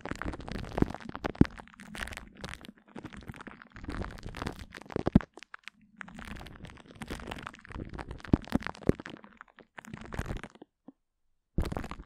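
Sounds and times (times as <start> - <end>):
sticky crackles and pops: 0.0 - 10.9, 11.6 - 12.0.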